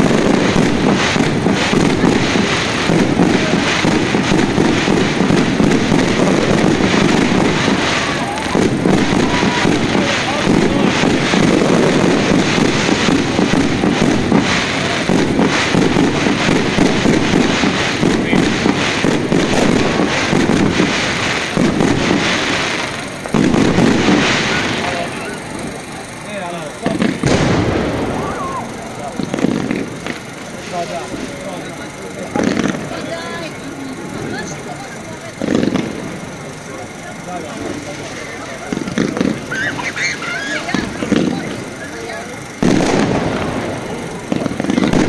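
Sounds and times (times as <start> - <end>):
fireworks bangs and crackling: 0.0 - 45.0.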